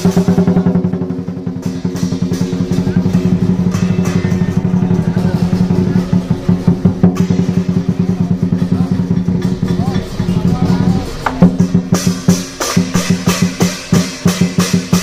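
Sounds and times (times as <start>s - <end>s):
cymbals: 0.0s - 15.0s
drum beaten fast: 0.0s - 15.0s.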